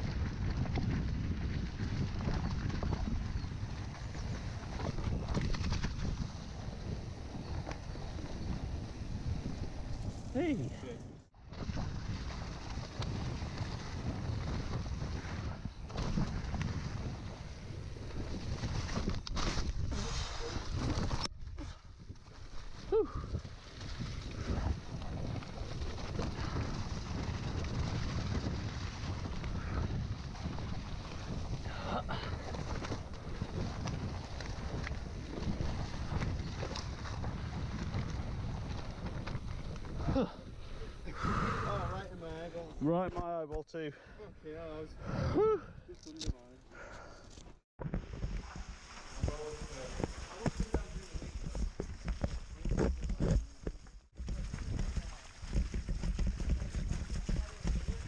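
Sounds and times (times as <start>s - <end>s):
wind noise on microphone: 0.0s - 43.1s, 44.4s - 58.0s.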